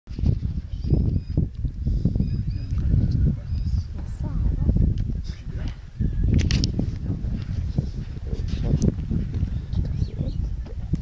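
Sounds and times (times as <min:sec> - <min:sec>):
heavy low rumble: 0:00.2 - 0:11.0
birds whistling: 0:00.7 - 0:01.4, 0:02.2 - 0:03.9, 0:09.4 - 0:10.8.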